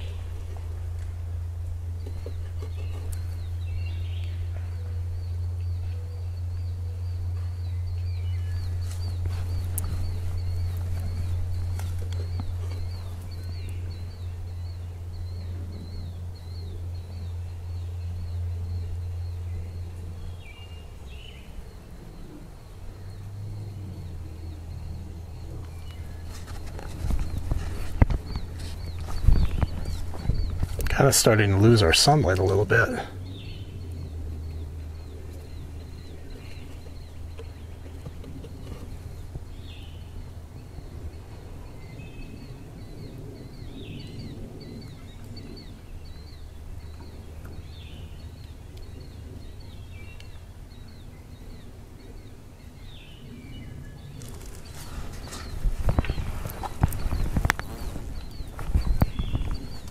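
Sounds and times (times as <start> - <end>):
low rumble: 0.0 - 51.6
bird chirps: 0.0 - 59.9.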